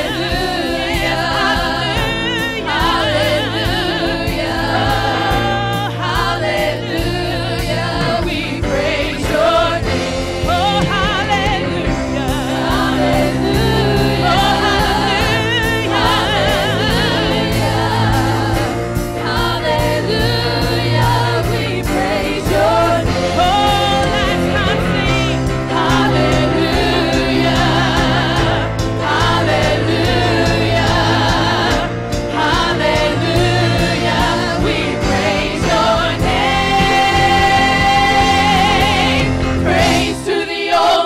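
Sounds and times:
bass and drums: 0:00.0 - 0:40.3
gospel singers with vibrato: 0:00.0 - 0:41.0.

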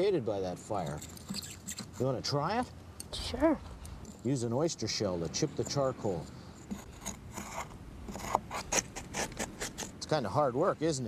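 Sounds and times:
shell scraping charred wood: 0:00.5 - 0:10.2.

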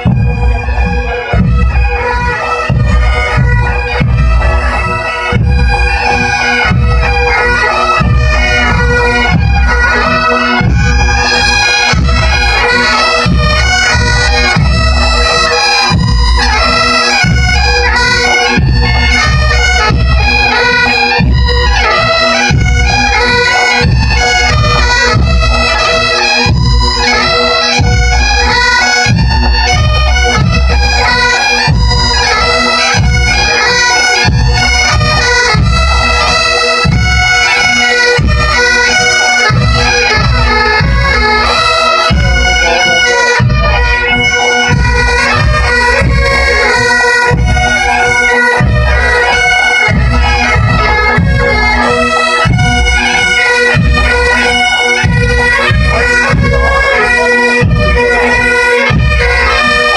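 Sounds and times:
bagpipes playing: 0:00.0 - 0:59.9
low drumbeat: 0:00.0 - 0:59.9.

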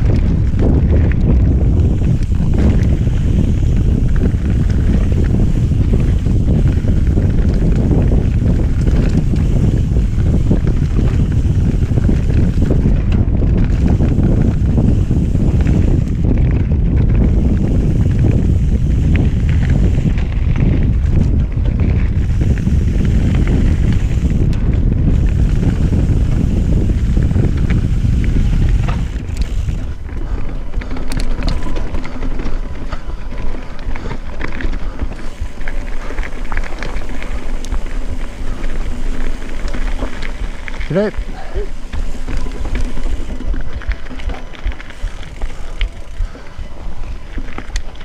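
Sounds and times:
bike rattling over rocks: 0:00.0 - 0:48.0
bike tyre roar: 0:00.0 - 0:48.0
wind buffeting microphone: 0:00.0 - 0:48.0.

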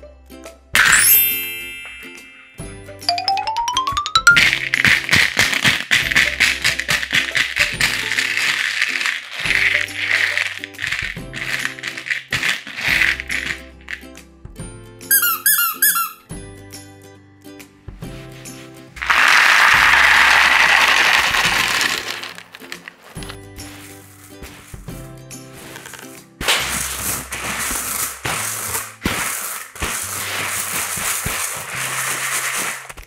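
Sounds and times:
background music: 0:00.0 - 0:32.8
candies tipped onto artificial grass: 0:03.1 - 0:14.1, 0:19.0 - 0:33.0
candies rattling on plastic tray: 0:03.6 - 0:14.1, 0:19.0 - 0:24.9, 0:25.6 - 0:33.0
squeaky toy squeezed: 0:15.1 - 0:16.3.

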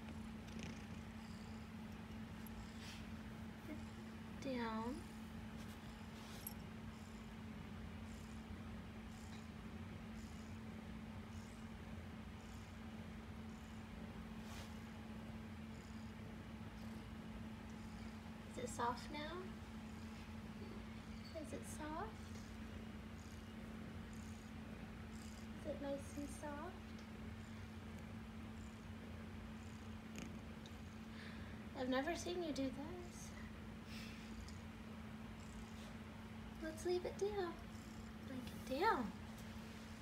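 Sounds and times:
kitten purring: 0:00.0 - 0:31.2.

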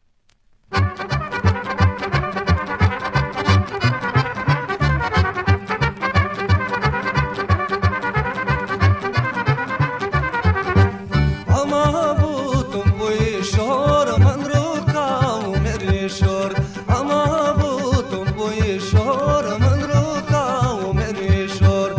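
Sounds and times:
trumpets: 0:00.7 - 0:11.6
accordions and guitars: 0:00.7 - 0:21.9
folk dance band playing: 0:00.7 - 0:21.9
quick bass beat: 0:00.8 - 0:07.9.

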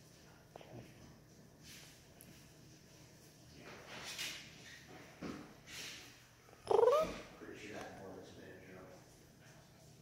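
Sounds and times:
kitten meowing: 0:06.7 - 0:07.2.

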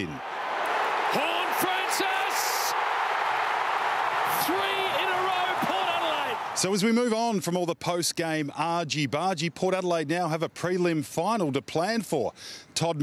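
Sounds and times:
stadium crowd cheering: 0:00.0 - 0:06.9
man calling out: 0:04.3 - 0:06.4.

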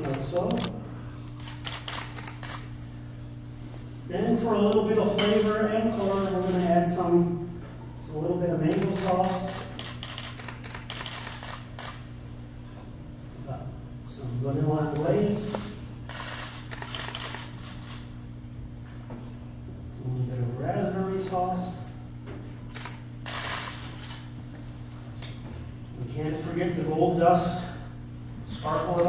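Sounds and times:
low room hum: 0:00.0 - 0:29.0.

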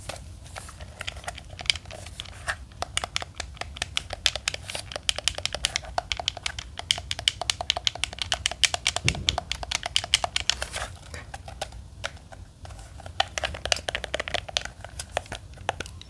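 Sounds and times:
game controller buttons clicking: 0:02.8 - 0:10.6, 0:13.2 - 0:16.0
low thud of handling: 0:09.0 - 0:09.7.

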